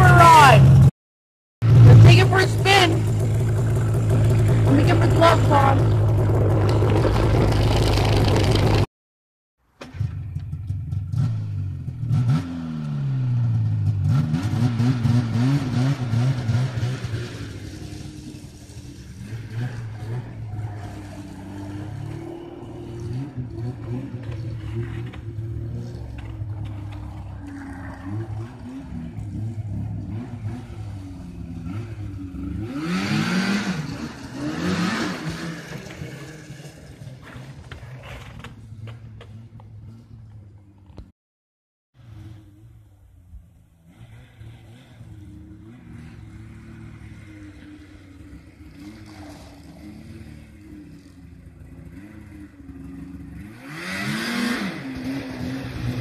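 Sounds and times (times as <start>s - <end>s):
snowmobile engine revving: 0.0s - 0.9s, 1.6s - 8.9s, 10.1s - 40.1s, 42.0s - 56.0s.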